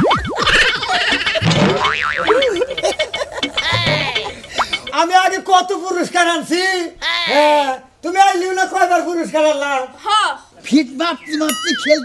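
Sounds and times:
springy cartoon boing: 0:00.0 - 0:05.0
short warbling tones: 0:00.0 - 0:05.2.

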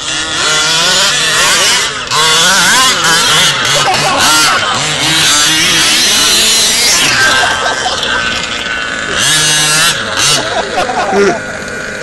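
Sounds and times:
small two-stroke engine revving: 0:00.0 - 0:12.0.

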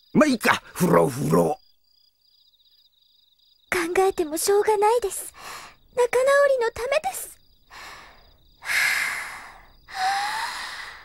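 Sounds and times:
woman gasping breathily: 0:07.7 - 0:11.0.

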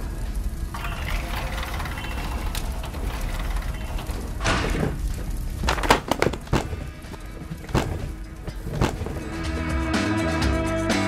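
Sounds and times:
metal roll-up door rattling: 0:00.8 - 0:09.3.

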